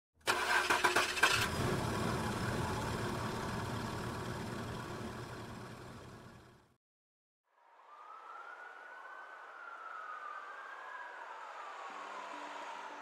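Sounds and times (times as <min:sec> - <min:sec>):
car engine starting and idling: 0:00.2 - 0:06.8.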